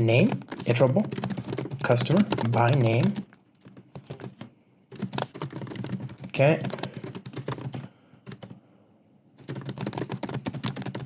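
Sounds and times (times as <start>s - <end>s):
computer keyboard typing: 0.0s - 8.6s, 9.4s - 11.0s.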